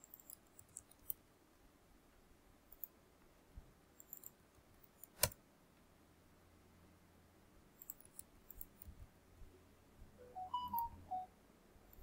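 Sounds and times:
mouse and keyboard clicks: 5.0s - 5.4s, 7.8s - 8.9s.

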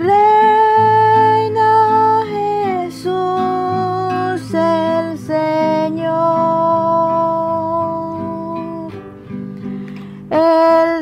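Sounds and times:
woman singing devotional song: 0.0s - 9.2s, 10.1s - 11.0s
plucked acoustic guitar: 0.0s - 11.0s.

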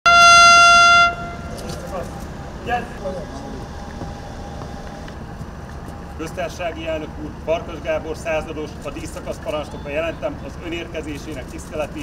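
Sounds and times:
loud horn-like tone: 0.0s - 1.6s
open-air background: 0.0s - 12.0s.

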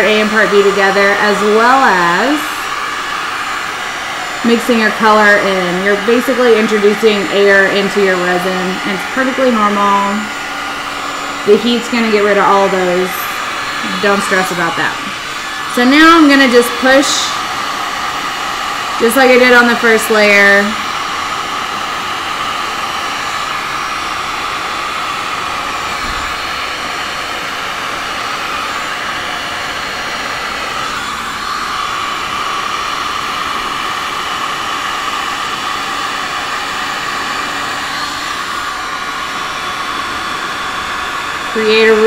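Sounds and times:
electric heat gun blowing air: 0.0s - 42.0s.

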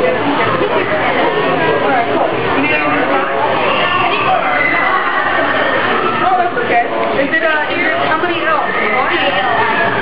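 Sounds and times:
several voices talking indistinctly: 0.0s - 10.0s.

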